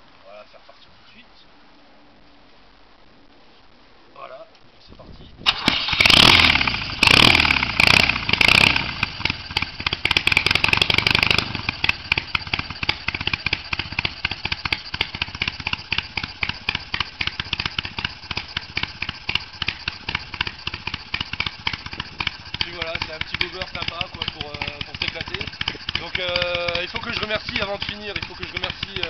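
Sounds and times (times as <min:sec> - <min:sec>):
motorcycle engine revving and idling: 0:05.5 - 0:29.0.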